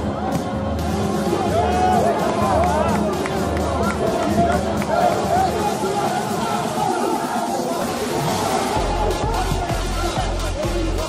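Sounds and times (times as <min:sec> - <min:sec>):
background chatter: 0:00.0 - 0:11.0
people shouting and calling out: 0:00.0 - 0:11.0.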